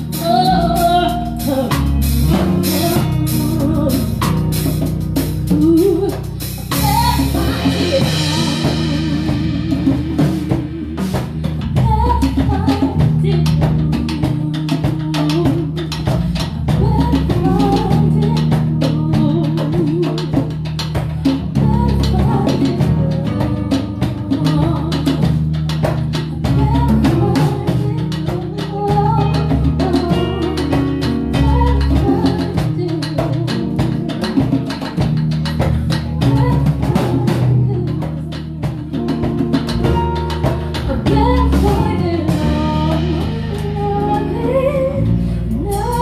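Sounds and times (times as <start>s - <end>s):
soul band playing: 0.0s - 46.0s.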